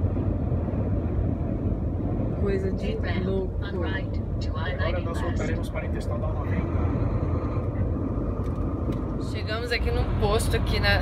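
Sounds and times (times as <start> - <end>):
truck engine and road noise: 0.0 - 11.0
wind buffeting truck: 0.0 - 11.0.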